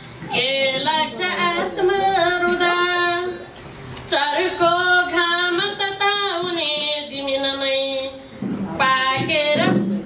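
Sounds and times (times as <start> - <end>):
woman singing into a microphone: 0.2 - 10.0.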